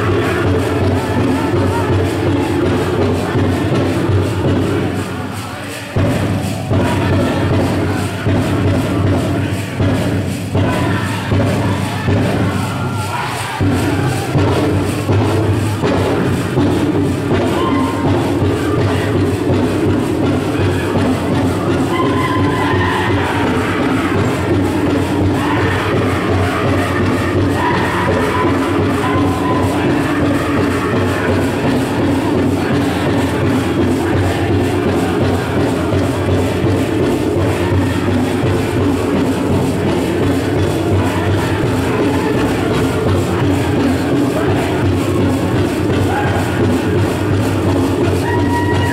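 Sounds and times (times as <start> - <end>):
steady drumbeat: 0.0 - 48.9.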